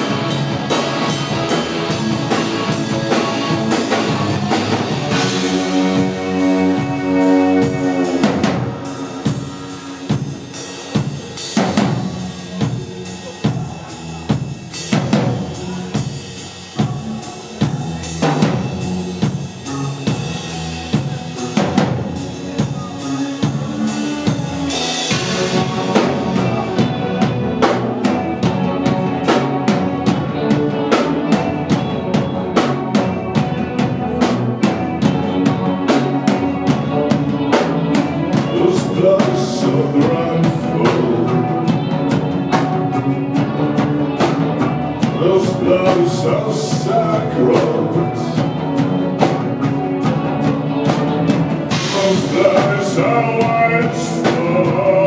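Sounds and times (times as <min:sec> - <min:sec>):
rock band playing live: 0:00.0 - 0:55.0.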